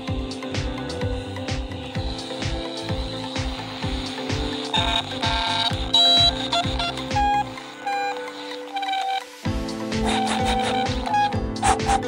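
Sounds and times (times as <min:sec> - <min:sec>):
background music with beat: 0:00.0 - 0:12.0
toy walkie-talkie beeps: 0:04.7 - 0:09.3, 0:10.1 - 0:11.4.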